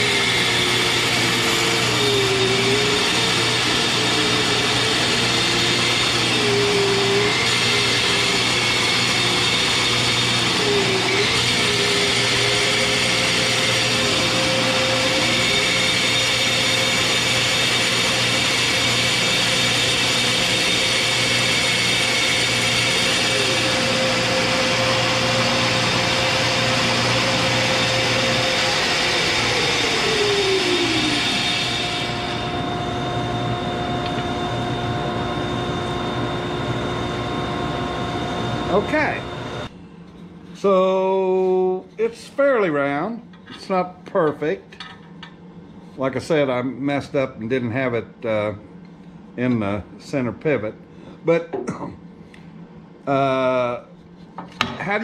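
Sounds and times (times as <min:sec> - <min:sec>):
bandsaw cutting wood: 0:00.0 - 0:37.4.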